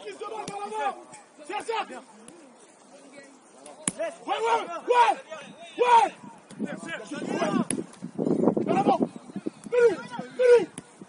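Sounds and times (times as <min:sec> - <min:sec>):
players shouting: 0:00.0 - 0:02.1, 0:03.6 - 0:07.8, 0:08.6 - 0:10.8.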